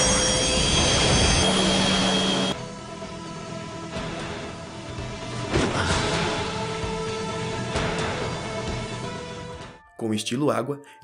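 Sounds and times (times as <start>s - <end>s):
loud rushing roar: 0.0s - 2.6s
high whine: 0.0s - 3.2s
low hum: 0.0s - 9.0s.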